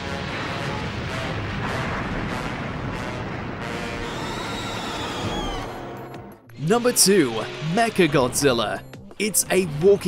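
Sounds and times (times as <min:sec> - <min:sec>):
rumble of explosions: 0:00.0 - 0:06.5
film music: 0:00.0 - 0:10.0.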